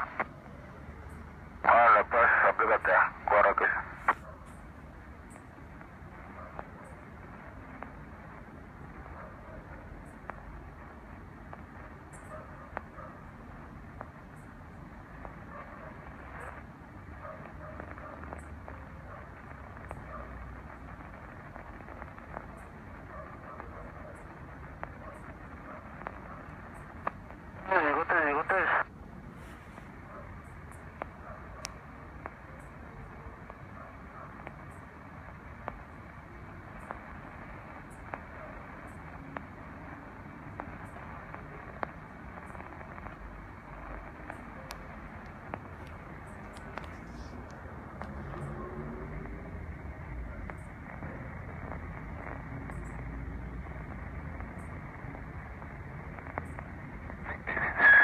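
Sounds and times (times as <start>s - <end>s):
faint voices on radio: 0.0s - 58.0s
radio static hiss: 0.0s - 58.0s
loud warbling radio signal: 27.6s - 28.9s, 57.3s - 58.0s.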